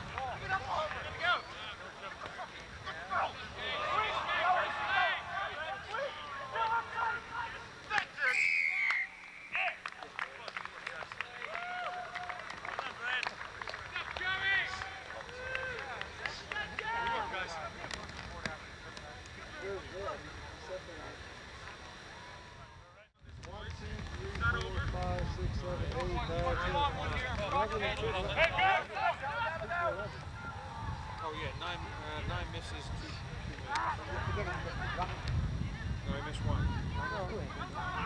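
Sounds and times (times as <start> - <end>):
players and spectators calling out: 0.1 - 9.9, 26.2 - 35.1
referee's whistle blast: 8.2 - 9.8.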